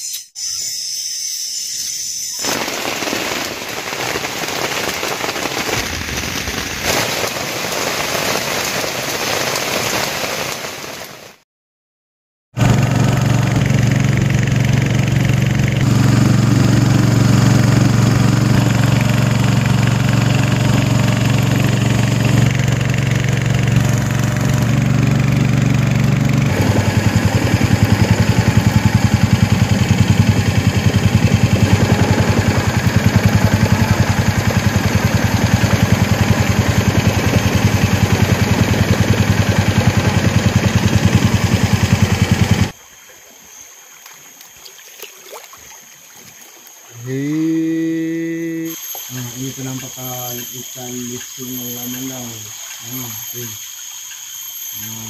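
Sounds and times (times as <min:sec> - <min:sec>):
boat motor running: 0:12.6 - 0:42.8, 0:44.2 - 0:55.0
hull moving through water: 0:41.8 - 0:47.0.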